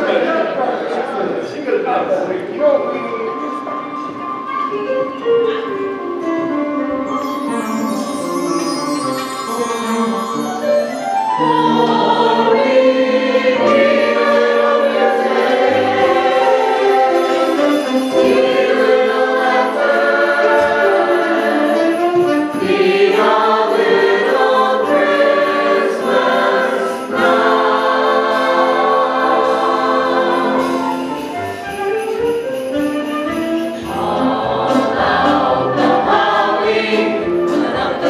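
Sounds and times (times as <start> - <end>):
ensemble singing in chorus: 11.3 - 31.1, 33.8 - 38.0.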